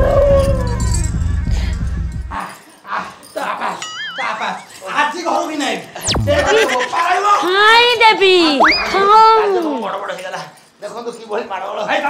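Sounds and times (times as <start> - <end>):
music with heavy bass: 0.3 - 2.4, 6.1 - 6.6
warbling comic sound effect: 6.0 - 6.9, 8.6 - 9.2.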